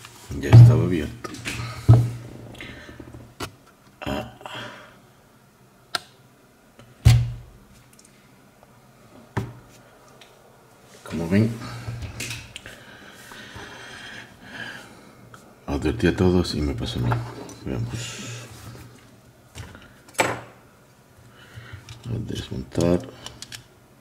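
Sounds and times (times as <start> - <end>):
person speaking: 0.3 - 1.3, 11.0 - 11.9, 22.0 - 23.2.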